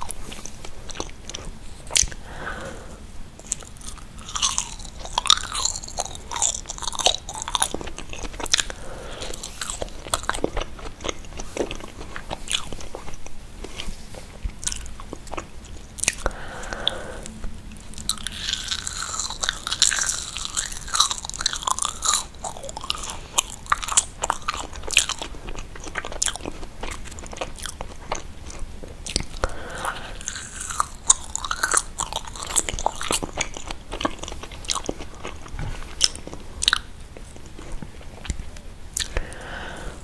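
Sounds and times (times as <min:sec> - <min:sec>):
chewing marshmallows: 0:00.0 - 0:40.0.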